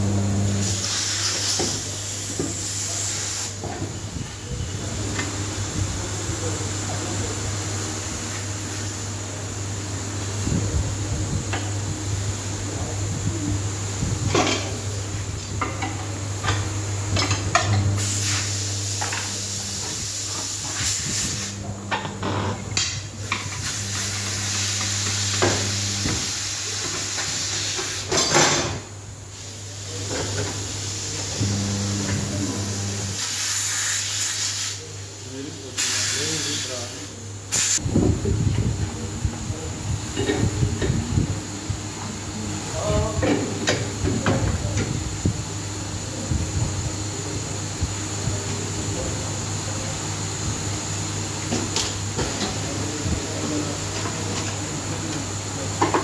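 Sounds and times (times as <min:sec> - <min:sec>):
low electric hum: 0:00.0 - 0:00.9, 0:04.0 - 0:26.9, 0:28.0 - 0:33.2
compressed air hissing: 0:00.5 - 0:03.6, 0:17.9 - 0:28.1, 0:29.3 - 0:37.8.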